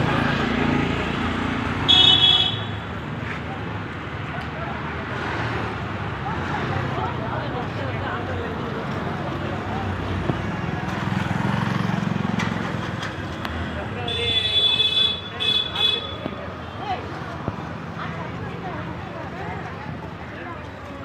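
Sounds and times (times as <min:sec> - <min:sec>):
low rumble of traffic: 0:00.0 - 0:21.0
many people talking: 0:00.0 - 0:21.0.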